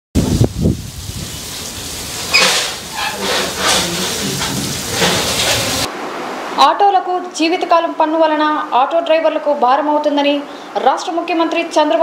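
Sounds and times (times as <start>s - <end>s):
steady hiss: 0.2s - 6.0s.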